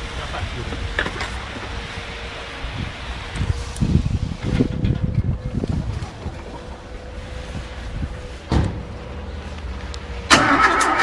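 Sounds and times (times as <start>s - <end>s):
wind buffeting microphone: 0.0s - 9.3s.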